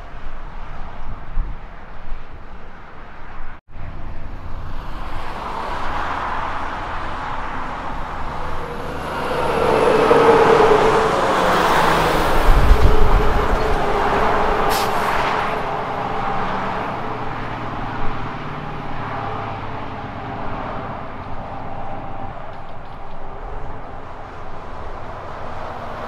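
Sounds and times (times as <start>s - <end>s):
highway truck traffic noise: 0.0s - 26.0s
truck passing at speed: 3.2s - 26.0s.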